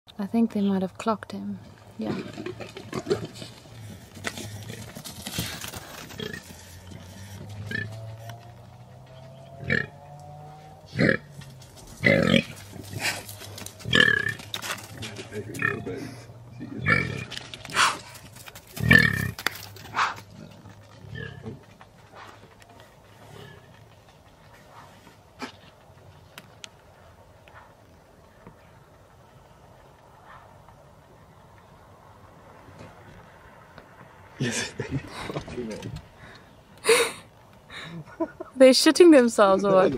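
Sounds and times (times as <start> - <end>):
faint bush ambience: 0.1 - 18.7, 19.5 - 39.9.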